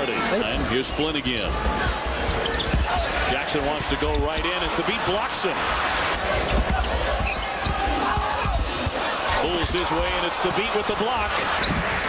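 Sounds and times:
arena crowd noise: 0:00.0 - 0:12.0
basketball bouncing on court: 0:02.2 - 0:03.1, 0:06.4 - 0:09.4.

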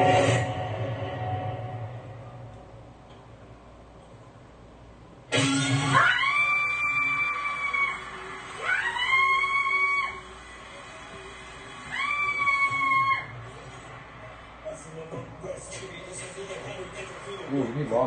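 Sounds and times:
long high sliding tones: 0:00.0 - 0:03.0.

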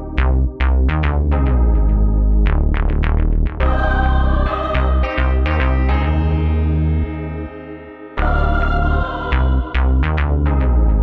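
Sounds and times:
bass: 0:00.0 - 0:11.0
held chords ringing: 0:03.6 - 0:10.1.

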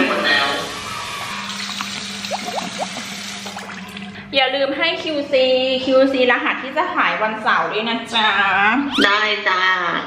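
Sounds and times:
water running into sink: 0:00.4 - 0:04.2
water splashing on face: 0:01.2 - 0:04.1.

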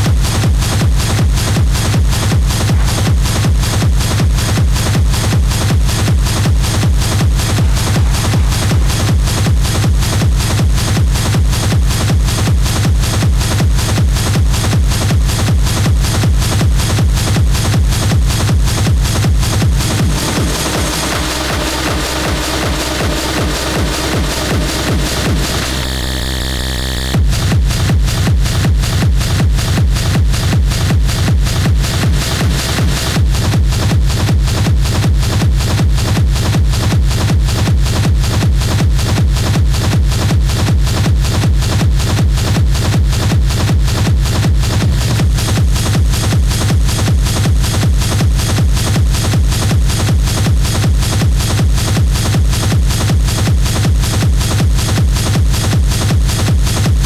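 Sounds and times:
distorted percussion loops: 0:00.0 - 0:57.0
pounding kick drum: 0:00.0 - 0:57.0.

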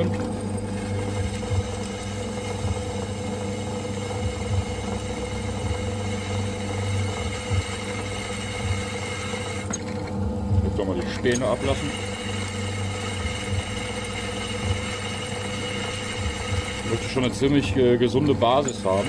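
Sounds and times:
drill press drilling into steel: 0:00.0 - 0:19.0.

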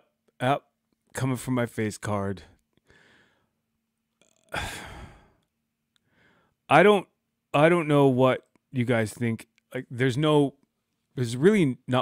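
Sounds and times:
man sighing: 0:04.2 - 0:05.5.

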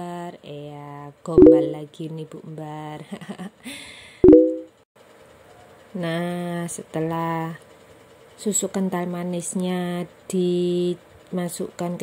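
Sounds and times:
electronic chime: 0:01.4 - 0:01.8, 0:04.2 - 0:04.7.

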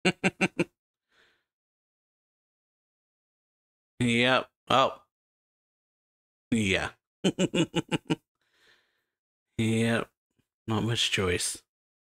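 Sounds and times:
man laughing: 0:00.0 - 0:00.7, 0:06.6 - 0:08.2
faint breath: 0:01.0 - 0:01.5, 0:08.4 - 0:09.2.

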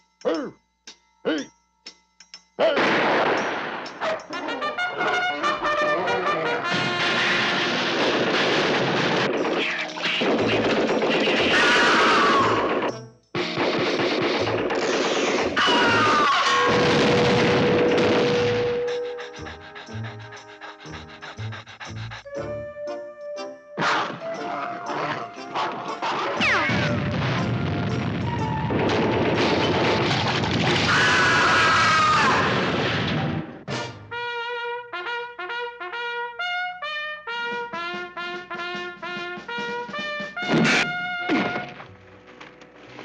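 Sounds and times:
background music: 0:03.4 - 0:07.8, 0:09.6 - 0:14.8, 0:17.4 - 0:28.9, 0:33.7 - 0:42.9
cartoon panting: 0:18.5 - 0:22.7
loud thunk sound effect: 0:40.4 - 0:41.8.

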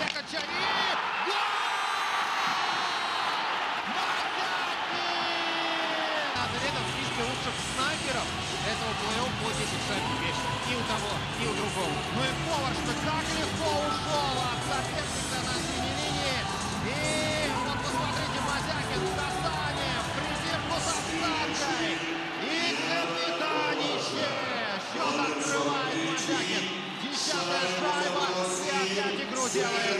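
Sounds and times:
crowd voices: 0:03.8 - 0:29.9
arena music: 0:06.4 - 0:28.7.

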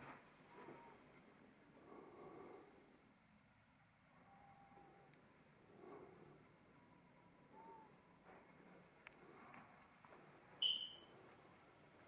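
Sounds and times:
high-pitched electronic chirp: 0:10.6 - 0:11.1.

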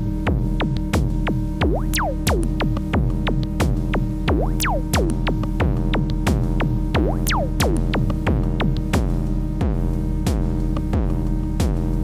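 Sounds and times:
drum machine hits: 0:01.6 - 0:03.5, 0:04.3 - 0:08.8.

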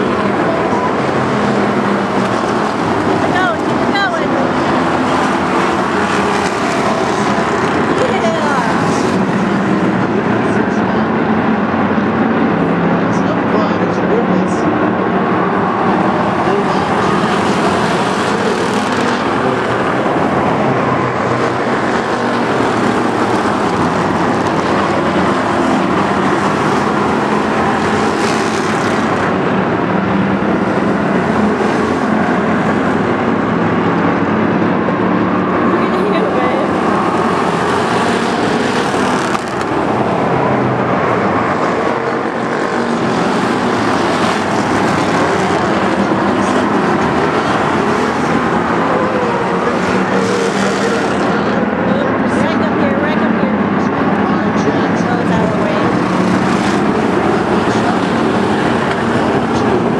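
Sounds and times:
race car engines droning: 0:00.0 - 0:59.9.

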